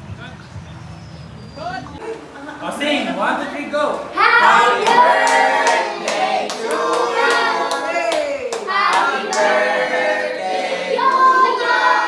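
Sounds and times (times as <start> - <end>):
group singing in chorus: 4.2 - 8.0, 8.6 - 12.0
hand clapping: 4.8 - 9.5.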